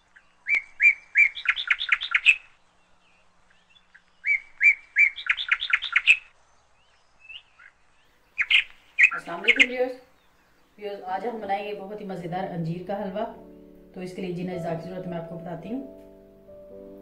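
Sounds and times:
songbird singing: 0.0s - 17.0s.

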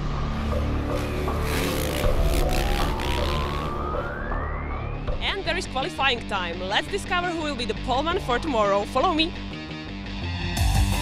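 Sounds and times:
intro music with low bass: 0.0s - 8.0s.

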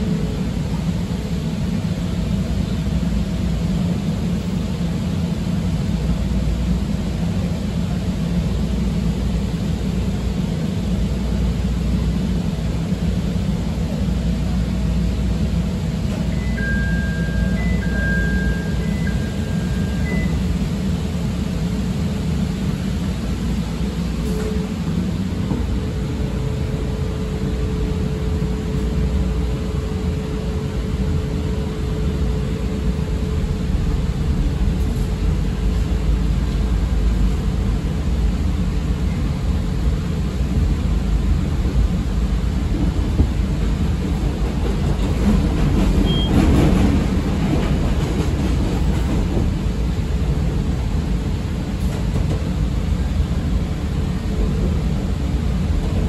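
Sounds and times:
train wheels rumbling on rail: 0.0s - 56.0s
held tone: 16.3s - 20.5s.

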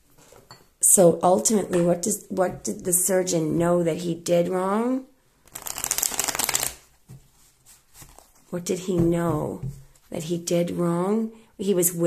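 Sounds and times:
cards riffle shuffling: 5.5s - 6.9s.

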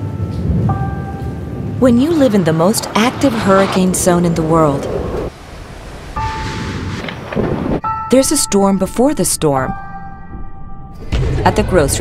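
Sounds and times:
storm wind and rain: 1.3s - 7.8s.

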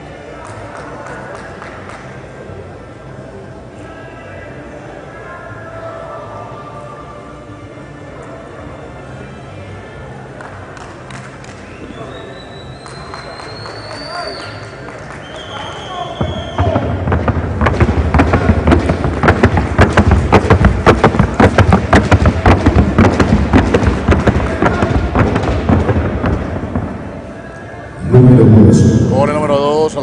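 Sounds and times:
horse hooves on wooden board: 17.1s - 26.9s.

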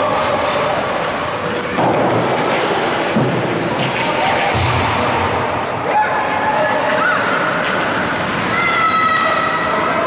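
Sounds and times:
echoing ice arena noise: 0.0s - 10.0s.

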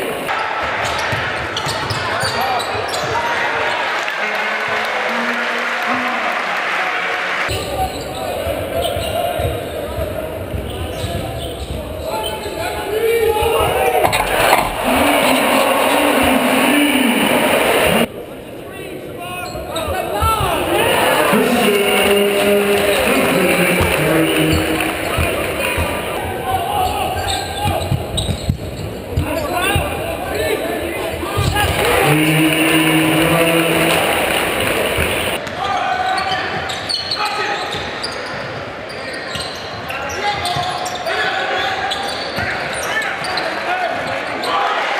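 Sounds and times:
crowd noise: 0.0s - 44.9s
sneakers squeaking: 0.8s - 3.3s, 7.5s - 16.3s, 22.8s - 30.0s, 31.3s - 31.9s, 36.0s - 43.6s
crowd cheering loudly: 3.1s - 7.6s, 13.3s - 18.1s, 20.5s - 27.1s, 31.4s - 35.4s
sneakers squeaking on hardwood: 8.8s - 12.6s, 26.8s - 29.9s
basketball bouncing on court: 27.6s - 30.0s.

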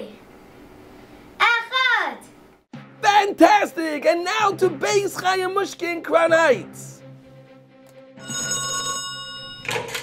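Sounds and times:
telephone bell ringing: 8.2s - 10.0s.

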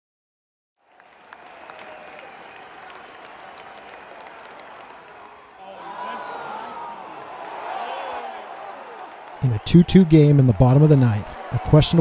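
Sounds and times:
individual claps: 0.8s - 12.0s
stadium crowd applauding: 0.8s - 12.0s.

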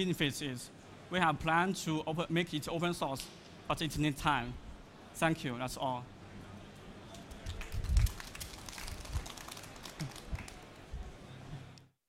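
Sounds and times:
audience applause: 7.3s - 10.7s.

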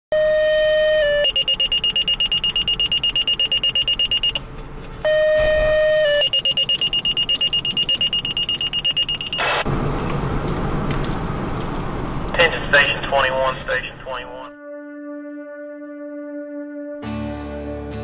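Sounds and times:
fire dispatch alert tones: 0.1s - 4.4s, 5.1s - 9.7s
rapid high-pitched pager beeps: 1.0s - 4.4s, 5.8s - 9.7s.

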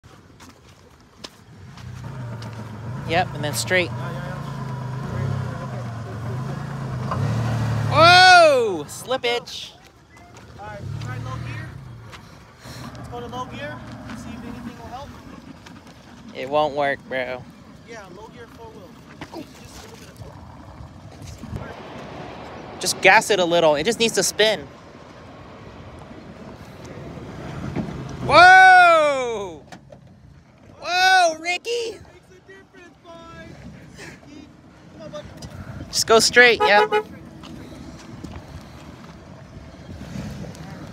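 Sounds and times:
wheels spinning: 0.1s - 32.3s, 37.1s - 40.9s
truck engine at low revs: 1.2s - 31.2s, 33.6s - 40.9s
truck engine revving: 1.6s - 9.4s, 10.4s - 18.0s
drawn-out voice calls: 30.7s - 39.6s.

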